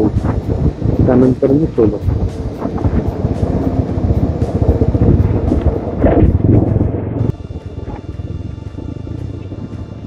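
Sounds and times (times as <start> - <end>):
background music: 0.0 - 10.0
wind on microphone: 0.0 - 10.0
motorcycle engine: 2.2 - 10.0.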